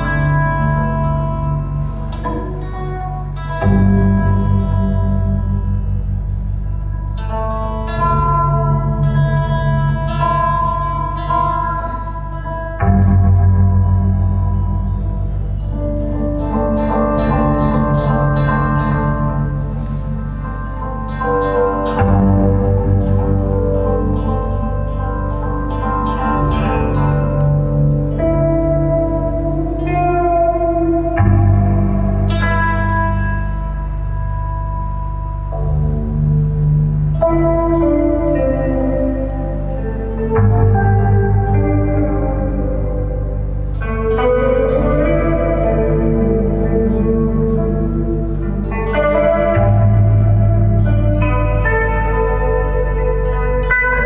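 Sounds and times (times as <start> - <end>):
acoustic guitar with echo: 0.0 - 54.0
plucked zither notes: 0.0 - 54.0.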